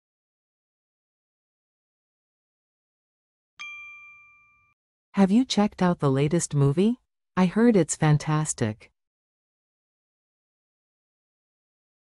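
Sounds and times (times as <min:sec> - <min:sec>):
bell-like chime ding: 0:03.6 - 0:04.8.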